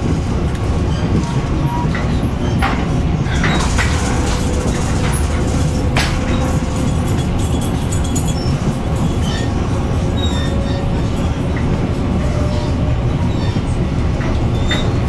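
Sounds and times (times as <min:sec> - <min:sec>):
train wheels rumbling on rails: 0:00.0 - 0:15.0.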